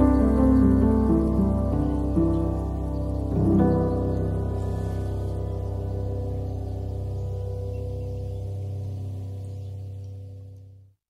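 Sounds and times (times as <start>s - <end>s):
steady low bass: 0.0s - 11.0s
sustained chords: 0.0s - 11.0s.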